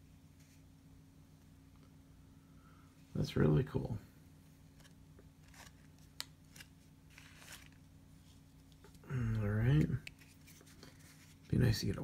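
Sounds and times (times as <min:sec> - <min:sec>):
low steady hum: 0:00.0 - 0:12.0
cards rustling and clicking: 0:04.7 - 0:11.6.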